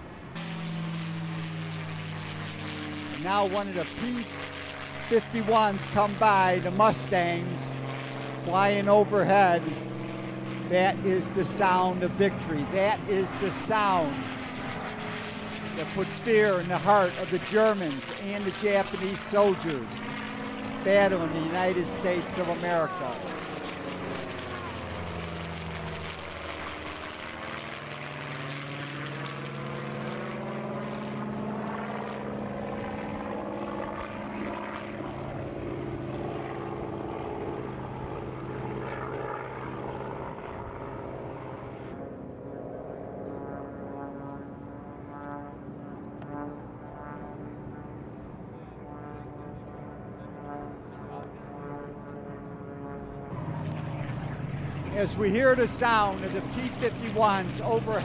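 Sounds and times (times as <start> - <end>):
propeller planes droning overhead: 0.0 - 58.0.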